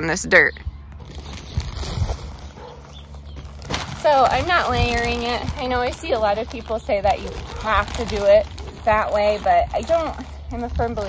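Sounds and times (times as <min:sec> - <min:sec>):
low steady rumble: 0:00.0 - 0:11.0
plastic bag rustling: 0:01.0 - 0:11.0.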